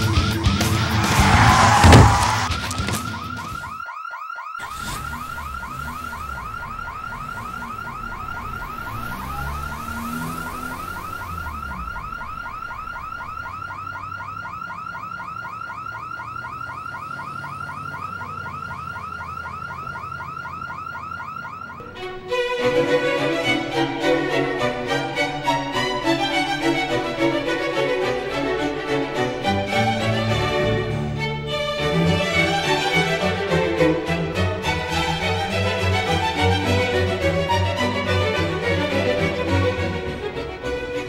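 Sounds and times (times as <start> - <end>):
car alarm warbling: 0.0 - 22.0
loud crash: 0.6 - 3.1.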